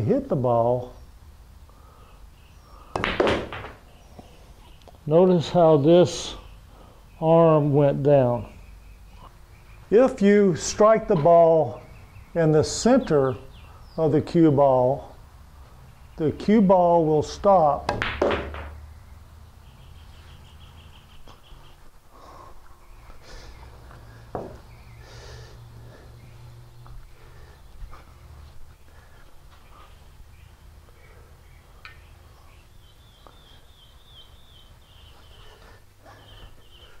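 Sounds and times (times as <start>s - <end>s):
faint bird chirps: 1.8s - 2.9s, 6.3s - 7.3s, 8.3s - 10.0s, 18.8s - 28.2s, 28.8s - 37.0s
steady low hum: 18.8s - 37.0s.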